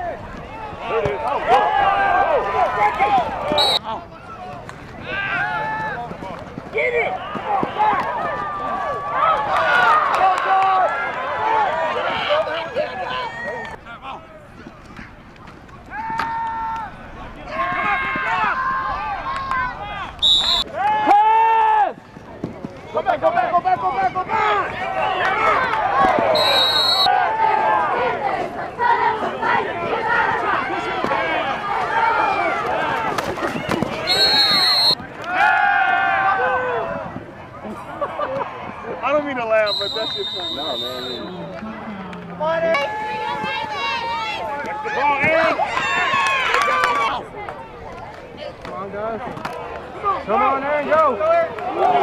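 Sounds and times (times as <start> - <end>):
crowd shouting and cheering: 0.0 - 52.0
referee whistle blasts: 3.5 - 3.8, 20.2 - 20.7, 26.3 - 27.1, 34.0 - 35.0, 39.6 - 41.4.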